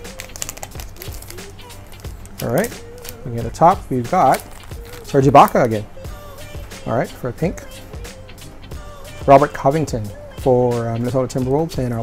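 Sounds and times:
plastic wrapper crinkling: 0:00.0 - 0:05.8
quiet background music: 0:00.0 - 0:12.0.

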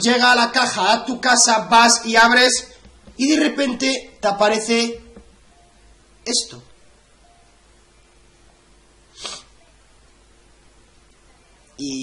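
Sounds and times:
sharp huff of breath: 0:09.1 - 0:09.6.

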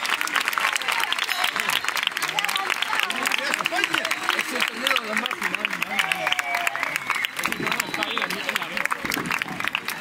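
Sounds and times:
crowd applauding: 0:00.0 - 0:10.0
people talking: 0:00.0 - 0:10.0.

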